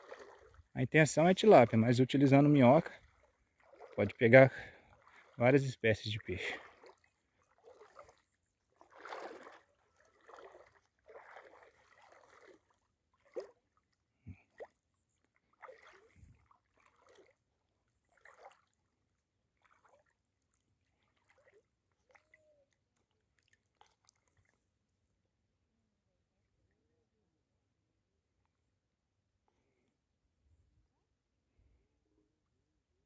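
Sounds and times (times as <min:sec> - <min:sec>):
water sloshing while wading: 0:00.0 - 0:25.1.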